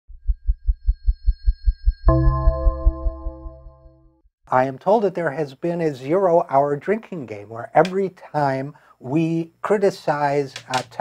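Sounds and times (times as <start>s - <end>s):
title sting: 2.1s - 4.1s.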